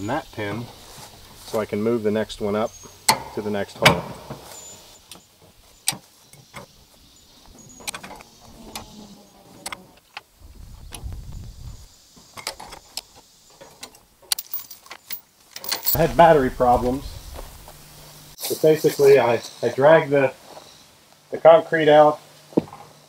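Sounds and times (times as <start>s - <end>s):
low rumble: 10.4s - 11.9s, 15.9s - 18.4s.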